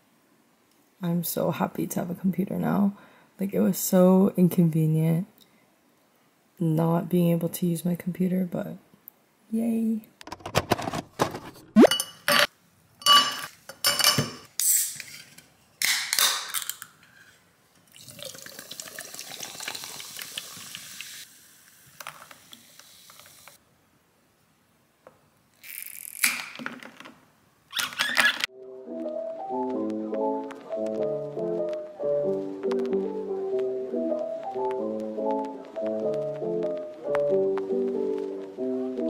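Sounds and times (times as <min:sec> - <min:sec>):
straw clinking against glass: 0:11.8 - 0:14.2
glass clinks and knocks: 0:11.8 - 0:14.4
soda pouring and fizzing: 0:17.8 - 0:23.6.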